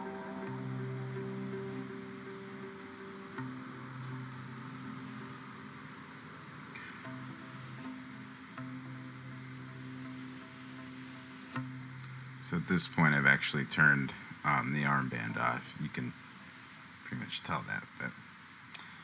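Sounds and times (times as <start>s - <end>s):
steady hiss: 0.0s - 19.0s.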